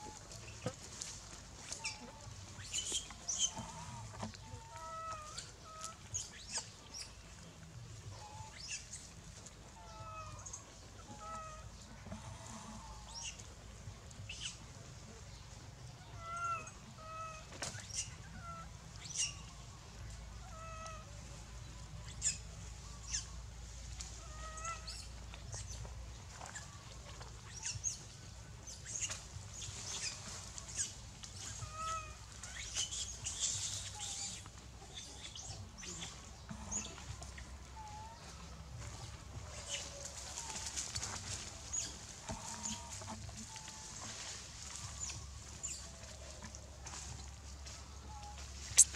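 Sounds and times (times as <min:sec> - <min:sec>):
rustles: 0:00.0 - 0:48.9.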